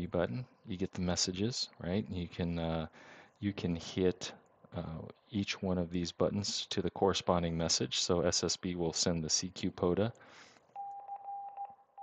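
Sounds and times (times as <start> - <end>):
morse code beeping: 10.8 - 11.8.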